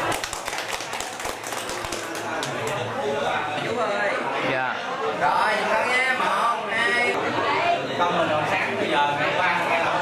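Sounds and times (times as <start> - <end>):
people clapping: 0.0 - 3.0.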